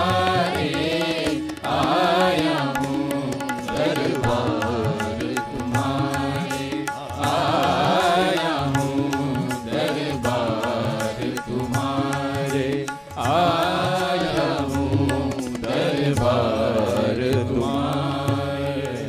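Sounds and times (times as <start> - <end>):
devotional singing: 0.0 - 19.0
tabla strokes: 0.0 - 19.0.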